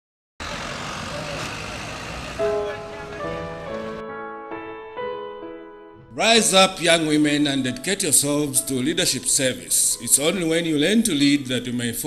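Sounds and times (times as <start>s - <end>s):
background voices: 0.4s - 4.0s
traffic noise: 0.4s - 4.0s.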